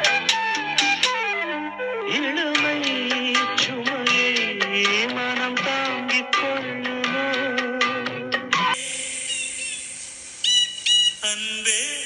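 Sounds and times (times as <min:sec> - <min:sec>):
high whistle-like notes: 0:08.7 - 0:12.0.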